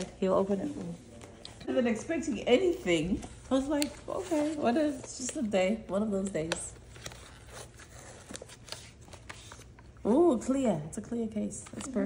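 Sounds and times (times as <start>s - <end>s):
paper rustling: 2.6s - 9.9s.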